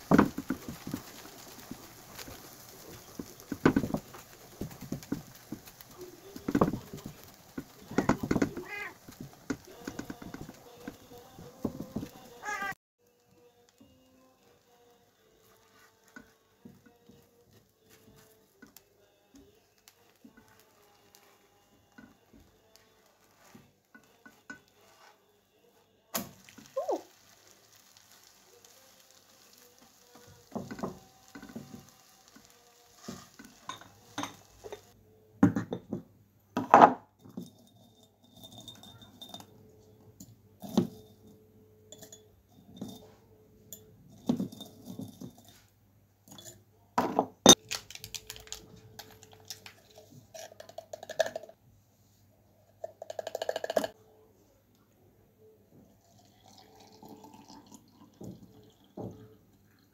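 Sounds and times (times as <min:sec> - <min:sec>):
batter sizzling in frying pan: 0:00.0 - 0:14.0, 0:14.6 - 0:23.7, 0:26.2 - 0:35.0.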